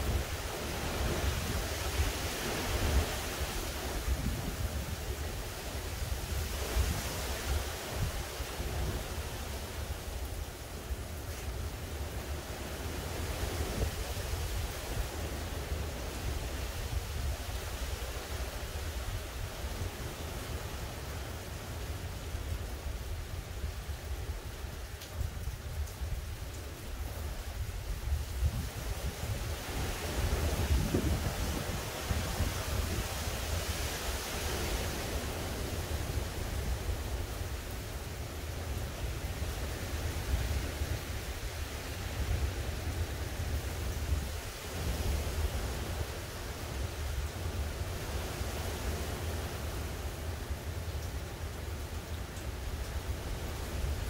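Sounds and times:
wind buffeting microphone: 0.0 - 9.2, 27.1 - 37.2
storm wind blowing through trees: 0.0 - 54.0.

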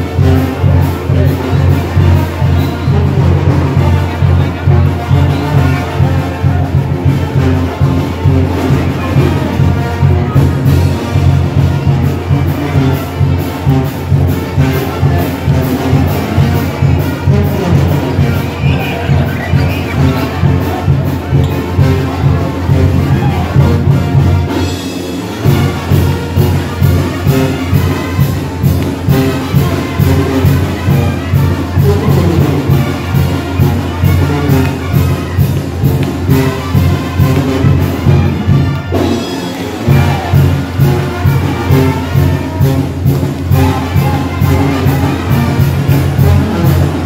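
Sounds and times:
brass band dance music: 0.0 - 47.0
pumping low brass: 0.0 - 47.0
trumpets and trombones: 0.0 - 47.0.

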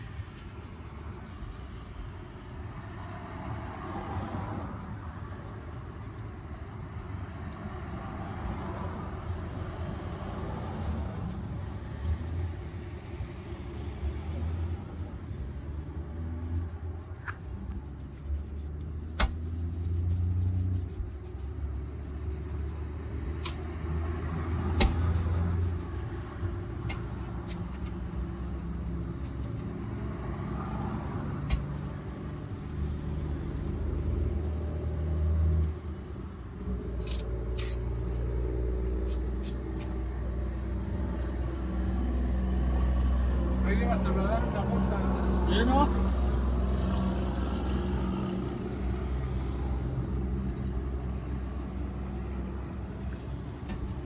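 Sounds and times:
brushing shoe leather: 0.0 - 43.5, 48.4 - 54.0
traffic rumble: 0.0 - 54.0.

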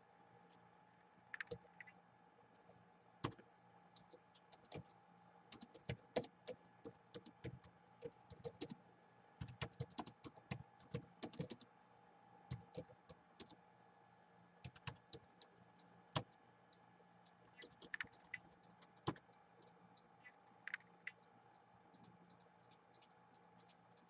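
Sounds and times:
laptop keyboard typing: 1.3 - 4.9, 5.5 - 8.8, 9.4 - 11.7, 12.5 - 13.6, 14.6 - 24.0.

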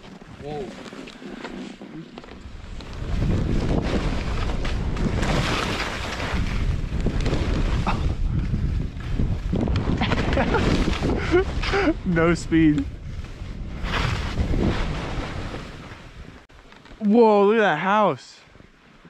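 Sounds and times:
skis scraping over snow: 0.0 - 16.5
wind buffeting microphone: 2.4 - 16.5.

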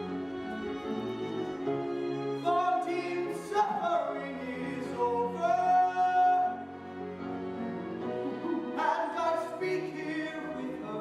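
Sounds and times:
orchestra playing: 0.0 - 11.0
person singing: 2.4 - 6.8, 8.1 - 11.0.

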